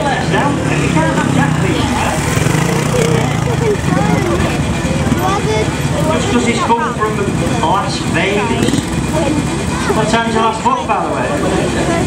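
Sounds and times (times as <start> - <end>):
motorcycle engine idling: 0.0 - 12.0
people talking: 0.0 - 12.0.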